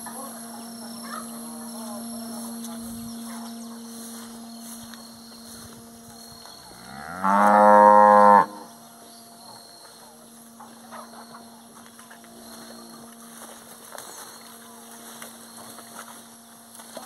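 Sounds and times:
cattle mooing: 6.7 - 8.7.

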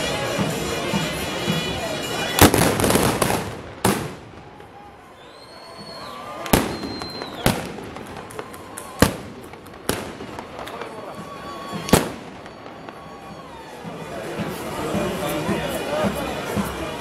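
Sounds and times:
crowd murmur: 0.0 - 17.0.

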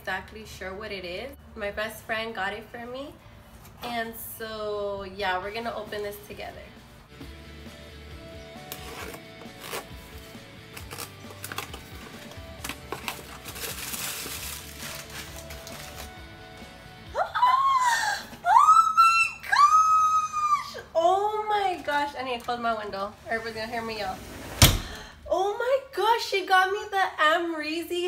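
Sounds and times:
cardboard tearing and rustling: 8.6 - 16.2
woman squealing with excitement: 17.1 - 20.9.

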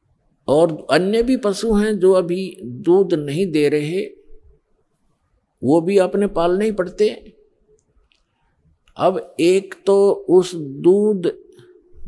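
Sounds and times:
man speaking: 0.5 - 4.2, 5.6 - 7.4, 9.0 - 11.6.

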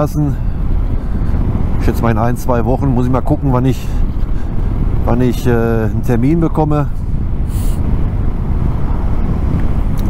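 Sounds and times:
motorcycle engine rumble: 0.0 - 10.0
wind buffeting microphone: 0.0 - 10.0.

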